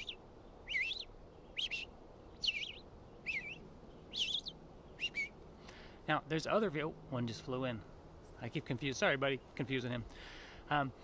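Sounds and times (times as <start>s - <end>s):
bird singing whistled phrases: 0.0s - 5.4s.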